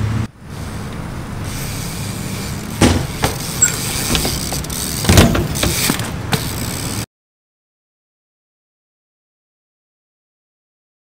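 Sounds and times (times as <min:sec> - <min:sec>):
bike striking concrete: 0:00.5 - 0:07.1.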